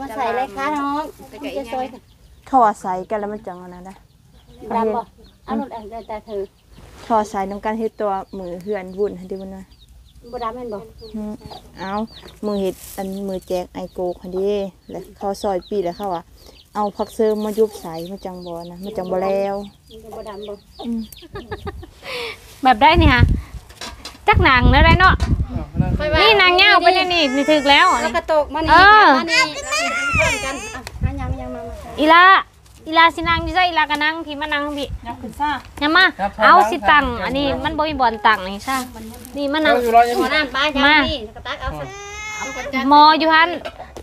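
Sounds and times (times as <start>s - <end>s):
chickens clucking: 0.5s - 22.6s, 26.0s - 30.9s, 39.6s - 44.0s
chicks peeping: 0.9s - 23.7s, 25.1s - 31.0s
small child whining cry: 26.7s - 28.3s, 29.3s - 30.9s, 41.7s - 42.9s.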